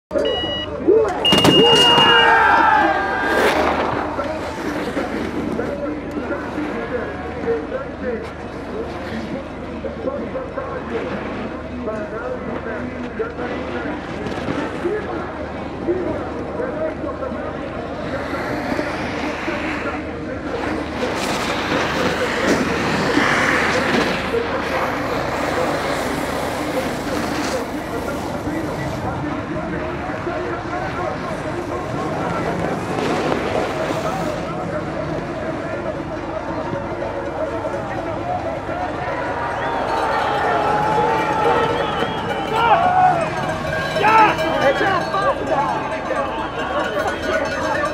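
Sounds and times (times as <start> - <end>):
voices: 0.1 - 47.9
electronic start beeps: 0.2 - 2.1
crowd cheering and shouting: 0.9 - 4.3, 36.6 - 47.9.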